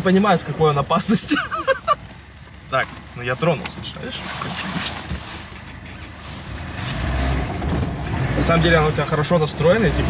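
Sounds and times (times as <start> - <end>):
car engine pulling away: 0.2 - 10.0.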